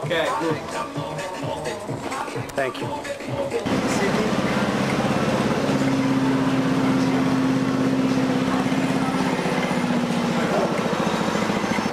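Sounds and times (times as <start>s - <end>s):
large vehicle engine running: 3.6s - 11.9s.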